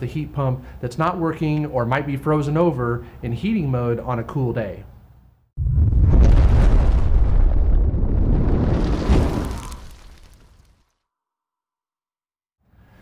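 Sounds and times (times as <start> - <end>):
deep boom: 5.6 - 10.5.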